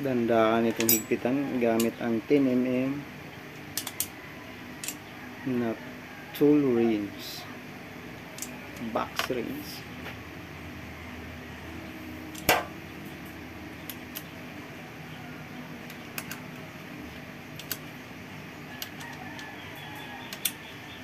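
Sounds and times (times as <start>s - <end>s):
wrench clicking on bolts: 0.7s - 1.1s, 3.7s - 4.1s, 17.6s - 17.8s, 20.3s - 20.6s.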